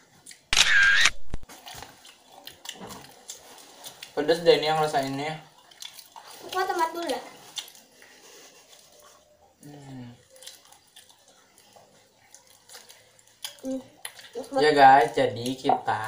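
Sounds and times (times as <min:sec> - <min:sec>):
people chewing crispy food: 0:00.0 - 0:16.0.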